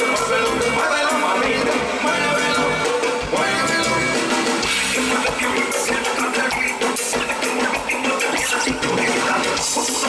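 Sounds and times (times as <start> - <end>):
live band music: 0.0 - 10.0
singer singing into a microphone: 0.0 - 10.0.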